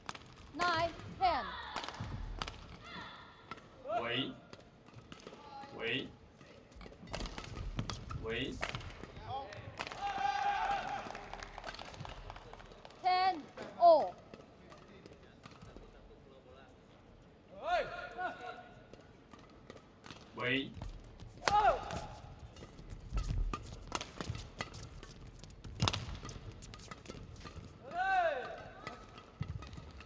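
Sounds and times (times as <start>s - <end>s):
racquets hitting shuttlecock: 0.0s - 15.9s, 18.9s - 30.0s
players shouting: 9.9s - 11.2s.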